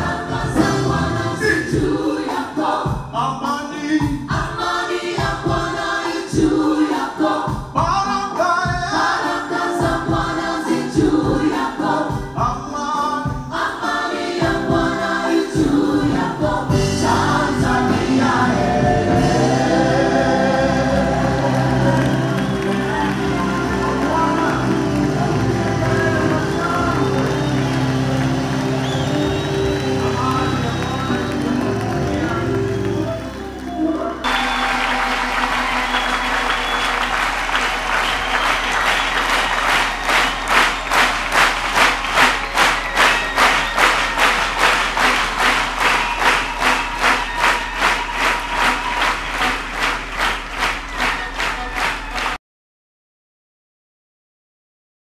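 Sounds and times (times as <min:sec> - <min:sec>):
rhythmic clapping: 0:00.0 - 0:03.0, 0:04.3 - 0:07.6, 0:13.5 - 0:52.4
choir singing with instruments: 0:00.0 - 0:52.2
crowd applause: 0:17.4 - 0:52.4.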